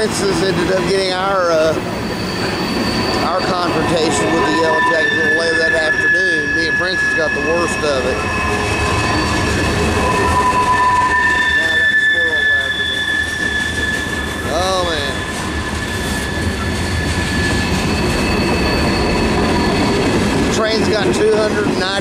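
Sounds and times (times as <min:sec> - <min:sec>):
freight train wheels rumbling: 0:00.0 - 0:22.0
wheel flanges squealing: 0:00.0 - 0:22.0.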